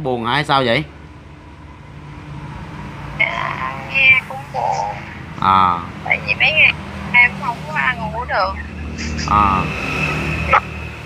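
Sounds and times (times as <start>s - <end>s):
low background rumble: 0.0s - 11.0s
faint hum: 3.1s - 11.0s.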